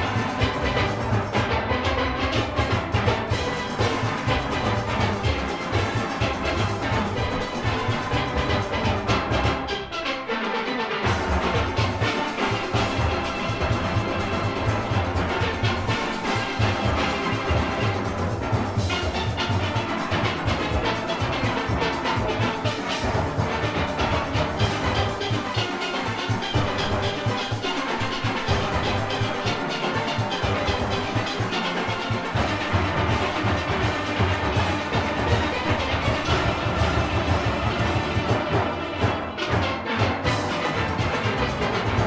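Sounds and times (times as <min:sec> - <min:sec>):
drum and percussion rhythm: 0:00.0 - 0:10.0, 0:10.9 - 0:42.0
steelpans playing: 0:00.0 - 0:42.0.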